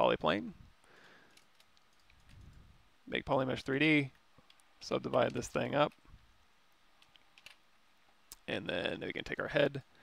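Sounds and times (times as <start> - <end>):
faint keyboard clicks: 1.2 - 2.6, 4.4 - 6.1, 7.0 - 7.6.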